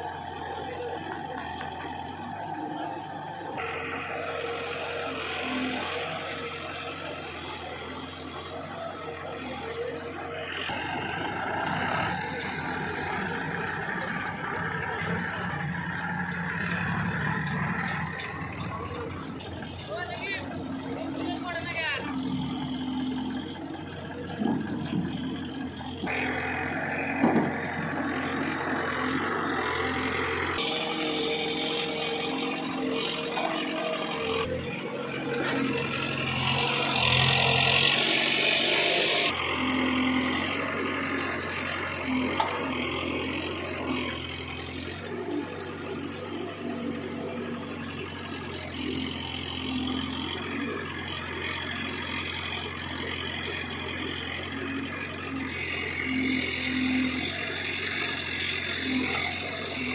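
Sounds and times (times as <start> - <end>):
diesel engine running under load: 0.0 - 59.9.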